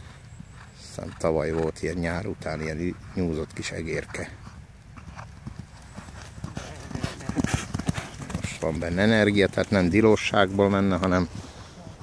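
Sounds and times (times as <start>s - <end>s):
horse hoofbeats galloping: 0.0s - 11.4s.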